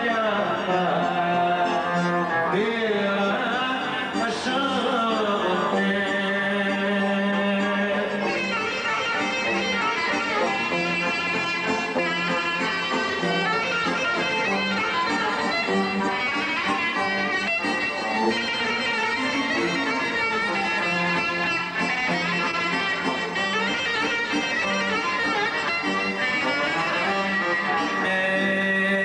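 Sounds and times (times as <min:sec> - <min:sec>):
clarinet melody: 0:00.0 - 0:28.7
keyboard: 0:00.0 - 0:29.0
plucked string instrument: 0:00.0 - 0:29.0.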